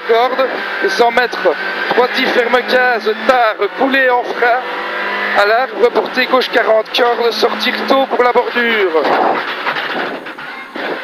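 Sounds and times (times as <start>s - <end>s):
rally car engine from inside: 0.0s - 11.0s
tyre and road noise: 0.0s - 11.0s.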